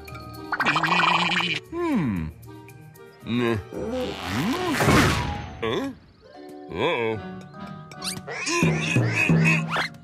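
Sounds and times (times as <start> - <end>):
background music: 0.0 - 10.0
wordless cartoon vocal sounds: 0.5 - 2.4, 8.0 - 10.0.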